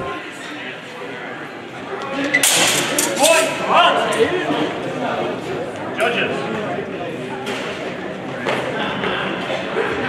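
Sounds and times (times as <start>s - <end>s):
echoing chatter in a hall: 0.0s - 10.0s.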